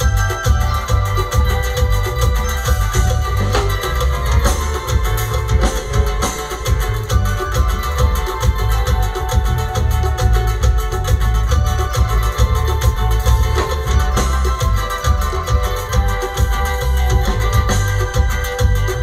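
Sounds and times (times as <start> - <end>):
live band dance music: 0.0 - 19.0.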